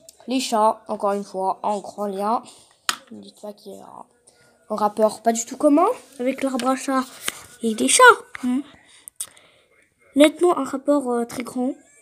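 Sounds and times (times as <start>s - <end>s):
person speaking: 4.7s - 9.0s.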